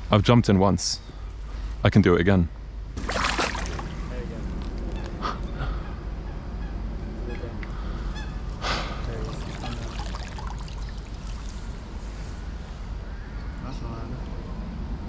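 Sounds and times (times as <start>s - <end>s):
steady low rumble: 0.0s - 15.0s
geese honking: 4.8s - 8.6s.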